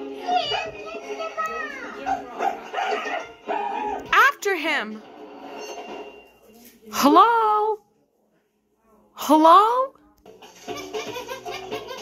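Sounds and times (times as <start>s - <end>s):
cartoon soundtrack on television: 0.0s - 7.8s, 9.1s - 12.0s.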